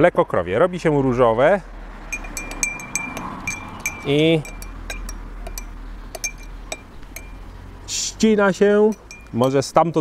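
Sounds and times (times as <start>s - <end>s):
teaspoon clinking in glass: 2.1s - 7.4s, 8.9s - 9.4s.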